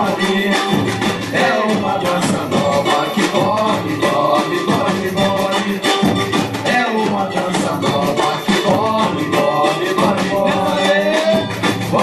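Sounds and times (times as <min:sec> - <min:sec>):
samba drums: 0:00.0 - 0:12.0.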